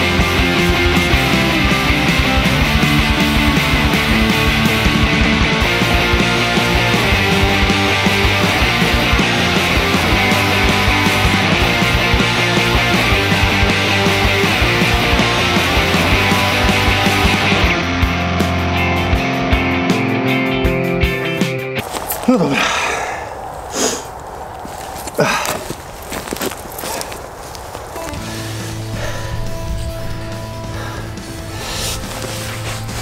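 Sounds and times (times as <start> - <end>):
rock music with distorted guitar: 0.0 - 21.8.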